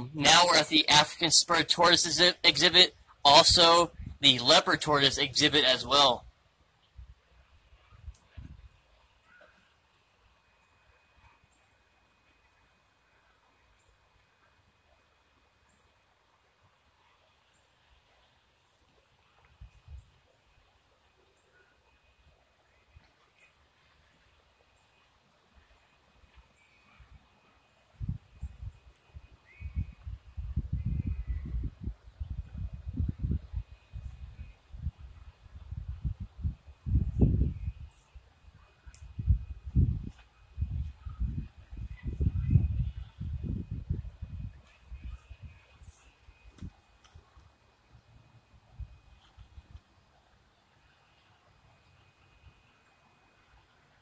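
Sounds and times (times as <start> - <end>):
wind buffeting microphone: 3.4 - 4.2, 7.9 - 8.8, 28.0 - 38.0, 39.0 - 46.8.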